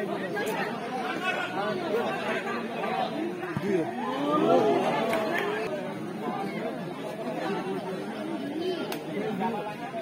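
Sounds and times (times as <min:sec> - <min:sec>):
spectators chattering: 0:00.0 - 0:10.0.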